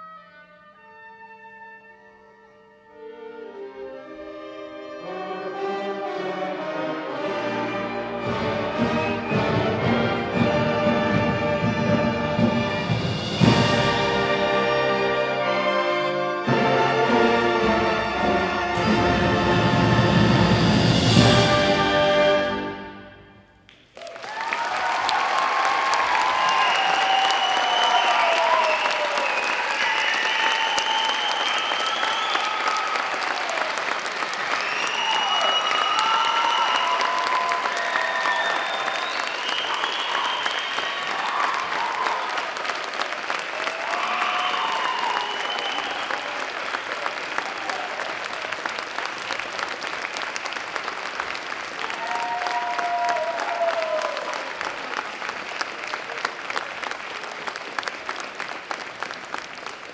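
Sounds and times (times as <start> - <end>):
audience applauding: 23.7 - 59.9.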